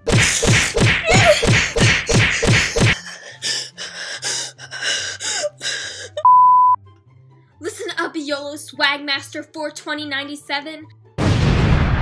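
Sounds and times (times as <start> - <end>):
woman screaming: 1.0 - 1.5
woman crying and gasping: 1.0 - 6.3
censor bleep: 6.2 - 6.8.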